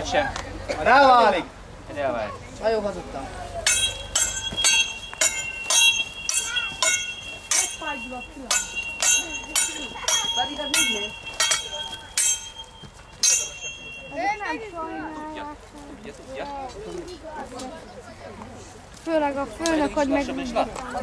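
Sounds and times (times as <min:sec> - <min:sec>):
steel swords clashing: 0:03.6 - 0:14.2.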